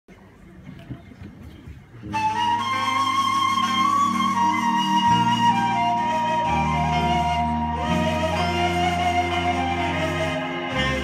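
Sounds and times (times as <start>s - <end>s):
flute-like wind instrument melody: 2.1s - 11.0s.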